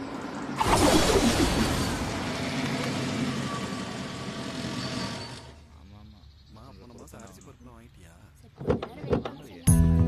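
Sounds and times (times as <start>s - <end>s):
car engine running: 0.5s - 5.6s.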